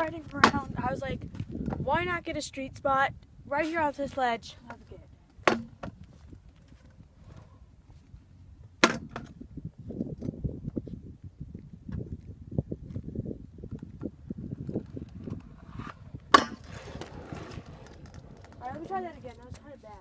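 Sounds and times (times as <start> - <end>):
scooter wheels rolling on asphalt: 0.0 - 2.5, 9.2 - 20.0
scooter sharp smack: 16.3 - 16.6.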